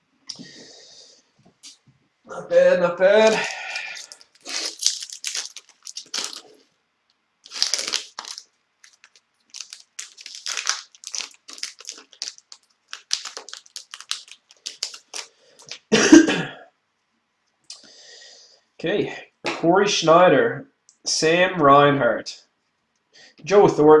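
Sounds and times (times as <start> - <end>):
foil wrapper crinkling and tearing: 3.2 - 6.7, 7.4 - 15.9.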